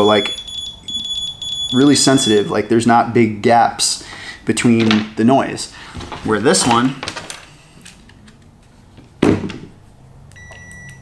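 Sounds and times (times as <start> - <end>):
meter continuity beep: 0.0 - 2.7, 10.4 - 11.0.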